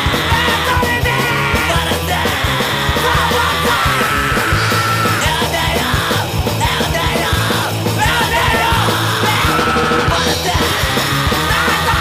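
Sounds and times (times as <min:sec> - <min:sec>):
hardcore punk band playing: 0:00.0 - 0:12.0
shouted vocals: 0:00.0 - 0:12.0.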